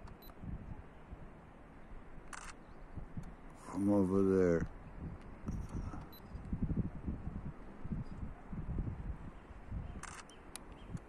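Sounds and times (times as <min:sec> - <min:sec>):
camera shutter click: 0:02.3 - 0:02.6, 0:10.0 - 0:10.6
high-pitched camera beep: 0:10.0 - 0:10.3.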